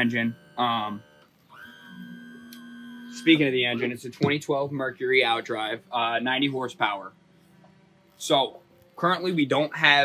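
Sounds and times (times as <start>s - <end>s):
electric trim motor whine: 0.0s - 10.0s.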